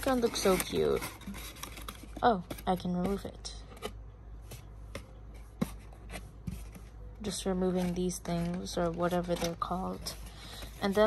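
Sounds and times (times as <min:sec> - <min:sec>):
cardboard rustling: 0:00.0 - 0:11.0.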